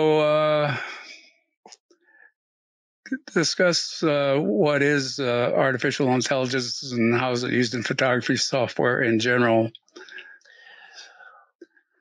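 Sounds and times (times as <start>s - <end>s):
faint breathy whisper: 0.0s - 1.2s, 3.1s - 11.4s.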